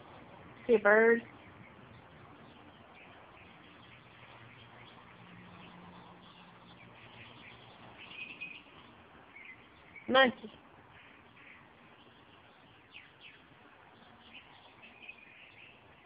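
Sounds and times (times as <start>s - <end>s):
faint birds chirping: 0.0s - 16.0s
faint low hum: 0.0s - 16.0s.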